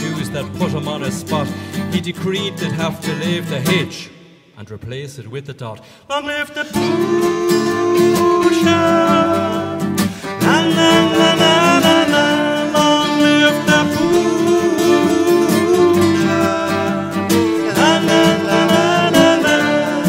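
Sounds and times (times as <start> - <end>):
button accordion chords: 0.0 - 2.0, 10.4 - 20.0
fiddle melody: 0.0 - 2.8, 6.8 - 20.0.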